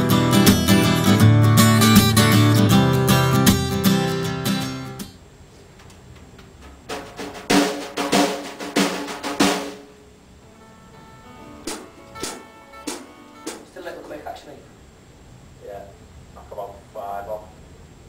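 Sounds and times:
guitar music: 0.0s - 5.2s, 9.3s - 14.6s
drum kit hits: 6.7s - 9.9s, 11.5s - 14.1s.

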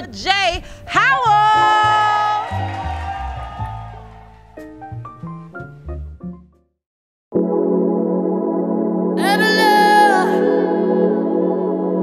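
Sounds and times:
slow r and b music: 1.4s - 6.6s, 7.4s - 12.0s.

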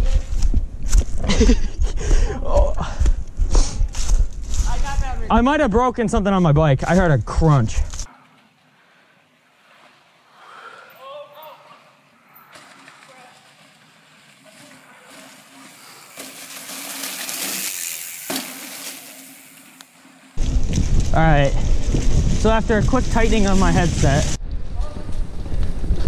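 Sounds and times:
bike tyres rolling over dry leaves: 3.9s - 5.3s, 8.3s - 10.6s, 11.4s - 24.4s.

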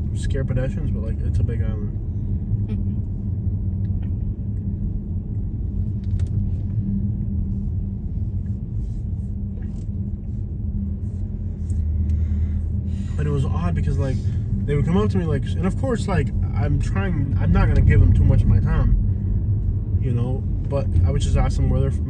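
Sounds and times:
car engine and tyres rumbling: 0.0s - 22.0s.

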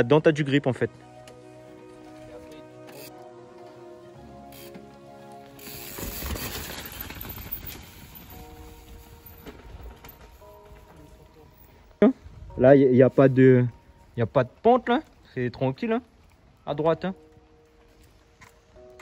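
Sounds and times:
background music: 0.0s - 19.0s
bicycle freehub clicking: 2.9s - 3.1s, 4.5s - 4.8s, 5.6s - 8.3s
bike tyres on mud: 5.4s - 11.7s.

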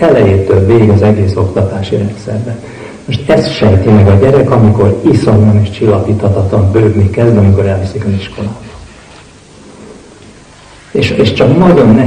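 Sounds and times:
man talking through microphone: 0.0s - 8.9s, 10.9s - 12.0s
faint room hiss: 0.0s - 12.0s.

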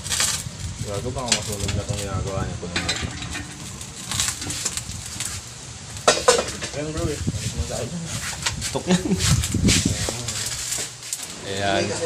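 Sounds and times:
metal utensils clinking: 1.2s - 4.8s, 6.0s - 7.1s.

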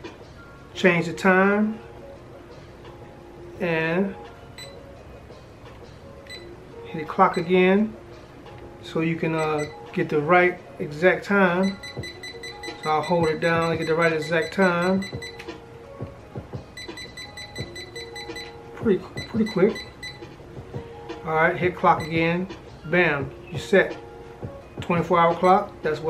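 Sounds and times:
soft background beat music: 0.0s - 26.0s
short electronic beeps: 11.6s - 15.4s, 16.8s - 18.6s.

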